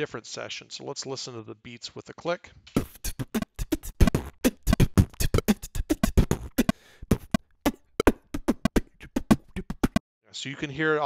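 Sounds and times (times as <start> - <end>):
beatbox groove: 2.8 - 10.0.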